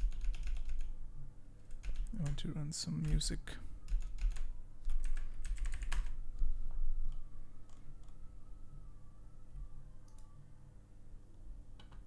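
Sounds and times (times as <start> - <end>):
computer keyboard typing: 0.0 - 0.9, 1.6 - 3.3, 3.9 - 6.2, 7.1 - 8.2, 10.0 - 10.3
low steady hum: 0.0 - 12.0.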